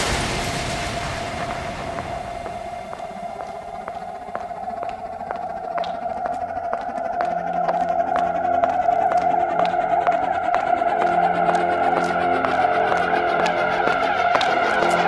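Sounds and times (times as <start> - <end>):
noise wash: 0.0 - 15.0.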